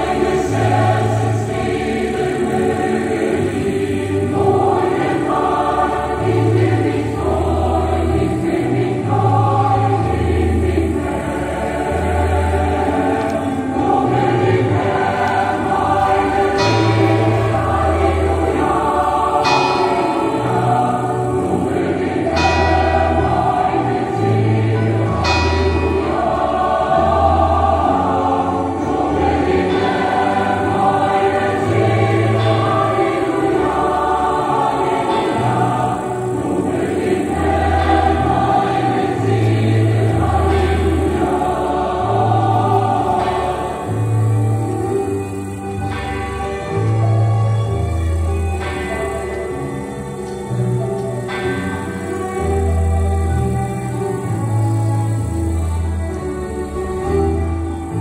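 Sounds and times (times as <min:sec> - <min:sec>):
choir singing: 0:00.0 - 0:58.0.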